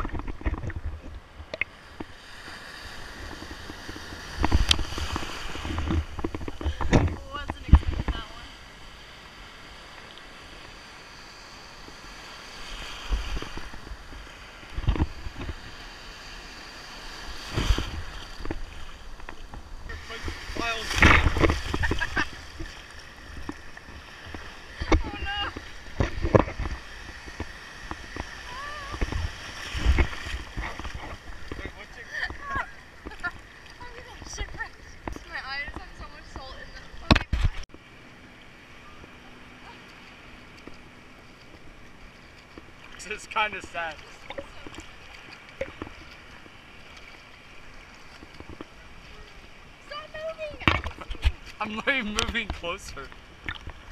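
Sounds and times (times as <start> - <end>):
waves splashing: 0.0 - 53.9
people laughing: 21.6 - 22.5
voices: 24.7 - 25.7, 31.6 - 37.3, 49.0 - 53.1.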